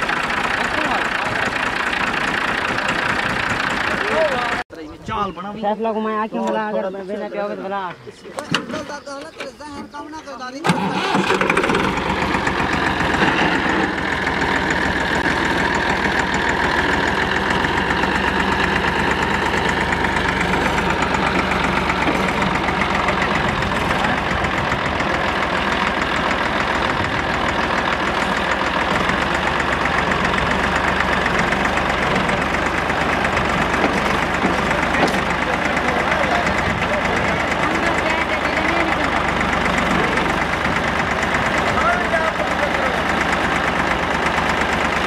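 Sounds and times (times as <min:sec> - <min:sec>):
tractor diesel engine idling: 0:00.0 - 0:04.9, 0:08.4 - 0:45.0.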